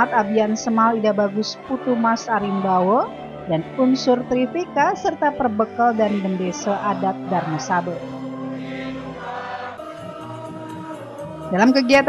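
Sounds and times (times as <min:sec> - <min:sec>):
group of people singing: 0:00.0 - 0:04.6, 0:05.8 - 0:12.0.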